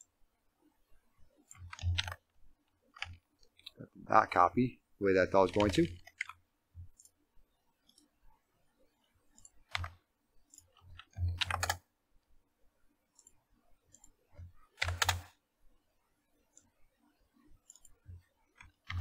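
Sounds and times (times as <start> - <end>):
keyboard and mouse clicks: 1.4 - 3.8, 5.4 - 7.2, 9.3 - 11.9, 13.1 - 15.4, 17.6 - 19.0.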